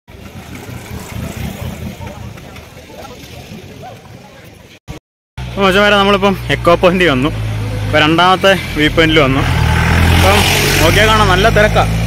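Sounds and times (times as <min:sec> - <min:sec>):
vehicle engine passing: 0:00.1 - 0:03.8, 0:05.4 - 0:12.0.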